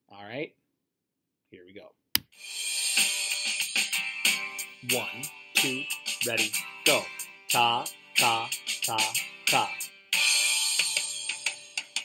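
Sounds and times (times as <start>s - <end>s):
drum-kit music: 2.4s - 12.0s.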